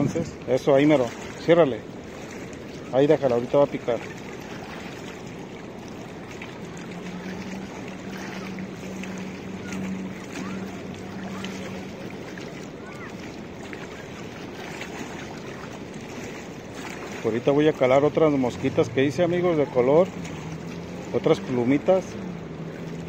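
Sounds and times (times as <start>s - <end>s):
wind buffeting microphone: 0.0s - 21.2s
waves lapping against stone: 0.0s - 23.0s
low hum: 4.0s - 17.2s.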